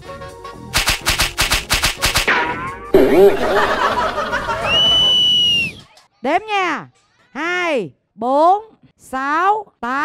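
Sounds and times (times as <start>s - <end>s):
rapid burst of gunshots: 0.8s - 2.3s.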